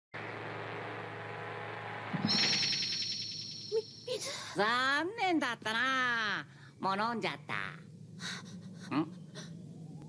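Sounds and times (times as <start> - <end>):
high wavering tone: 2.1 - 4.4.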